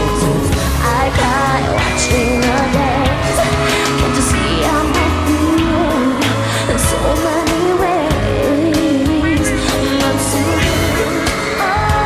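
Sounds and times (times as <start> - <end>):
bass: 0.0 - 12.0
person singing: 0.0 - 12.0.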